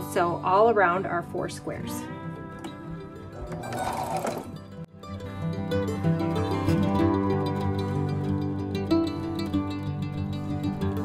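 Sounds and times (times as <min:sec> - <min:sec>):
plucked string music: 0:00.0 - 0:11.0
sewing machine stitching: 0:03.5 - 0:04.6.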